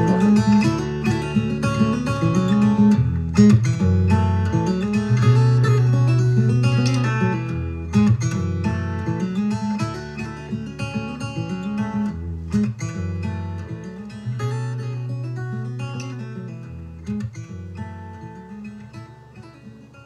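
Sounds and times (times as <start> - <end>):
acoustic guitar instrumental music: 0.0 - 20.0.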